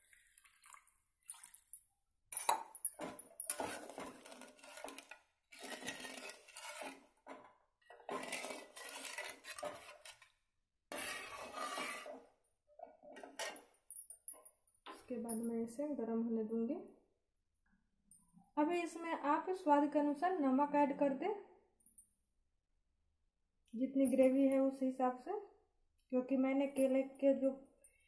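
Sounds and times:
spatula scraping metal pot: 3.5s - 13.7s.

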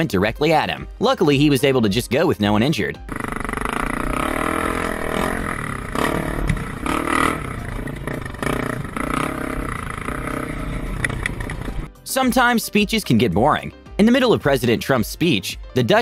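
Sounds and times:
dirt bike engine revving: 3.1s - 11.9s.

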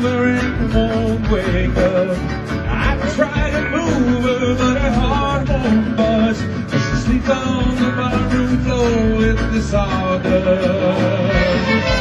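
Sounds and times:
live band playing a song: 0.0s - 12.0s.

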